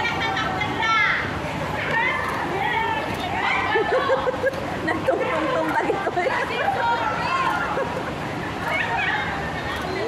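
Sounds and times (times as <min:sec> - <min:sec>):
women chattering: 0:00.0 - 0:10.0.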